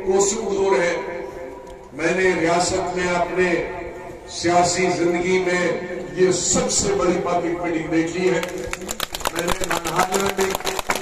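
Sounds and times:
man's voice: 0.0s - 1.3s, 1.9s - 11.0s
crowd clapping: 8.3s - 11.0s.

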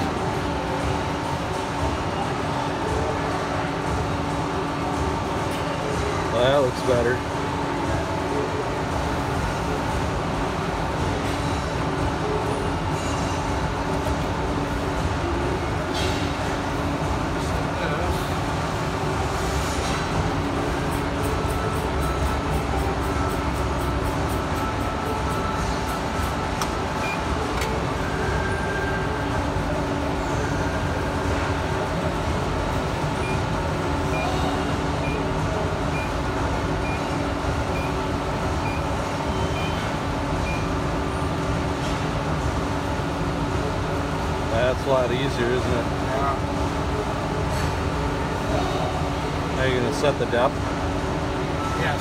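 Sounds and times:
machinery humming: 0.0s - 52.0s.

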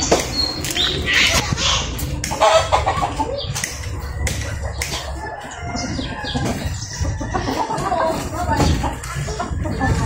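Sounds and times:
chickens clucking: 0.0s - 10.0s
roosters crowing: 0.0s - 10.0s.

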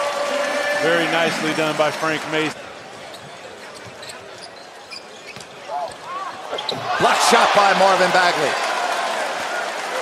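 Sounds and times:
arena crowd hum: 0.0s - 10.0s
shoe squeaks: 2.9s - 6.9s.

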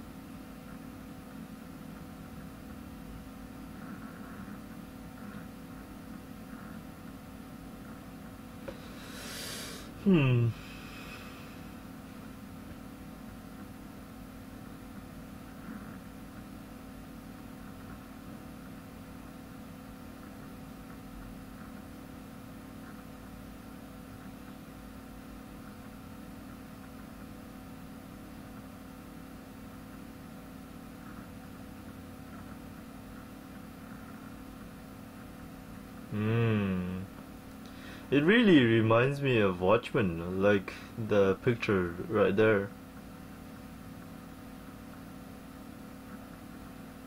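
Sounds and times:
low room hum: 0.0s - 47.0s.

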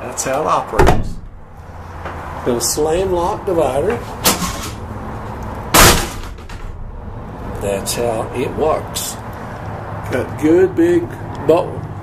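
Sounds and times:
metal latch banging shut: 0.8s - 1.4s, 4.2s - 4.8s.

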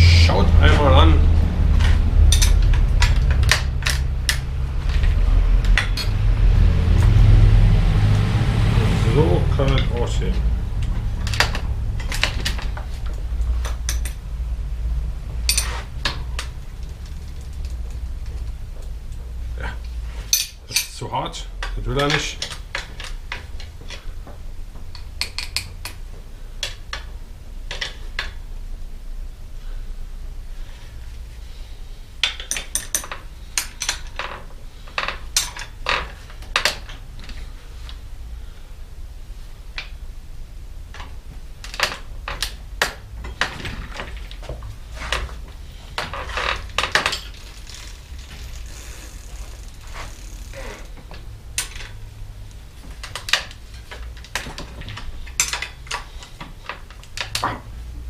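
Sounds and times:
low steady hum: 0.0s - 58.0s.

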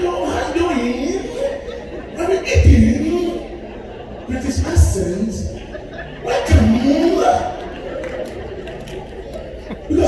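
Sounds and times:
murmur of people chattering: 0.0s - 10.0s.

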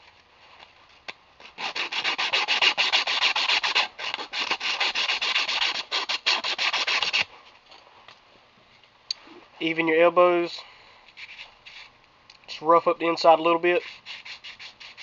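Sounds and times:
sandpaper rubbing copper pipe: 1.5s - 7.3s, 11.2s - 12.0s, 13.6s - 15.0s.

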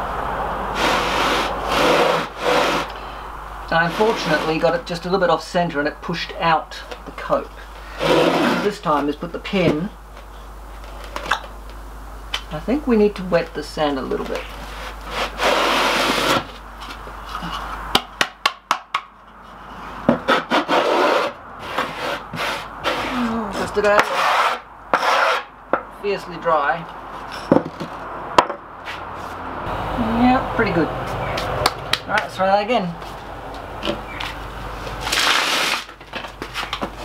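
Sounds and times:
low steady hum: 0.0s - 18.3s.

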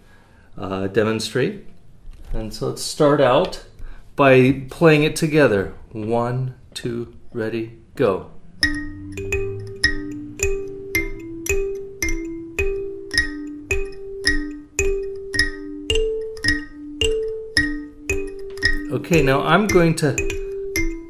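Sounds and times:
kalimbas plucked in unison: 8.6s - 21.0s.

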